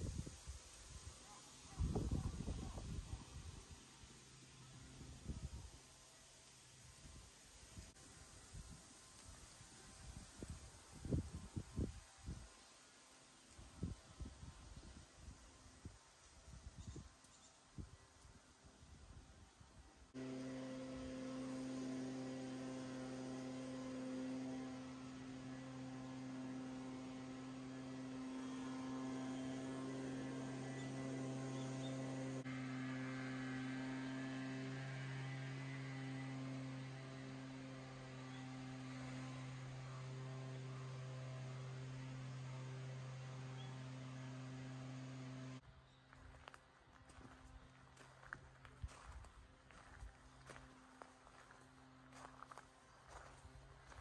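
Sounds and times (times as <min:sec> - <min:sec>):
steady low hum with overtones: 0:00.0 - 0:54.0.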